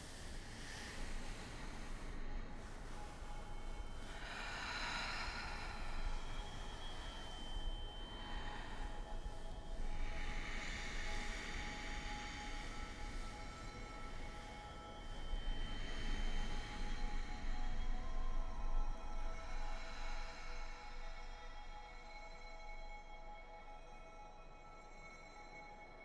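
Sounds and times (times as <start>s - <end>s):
ambient drone music: 0.1s - 22.8s.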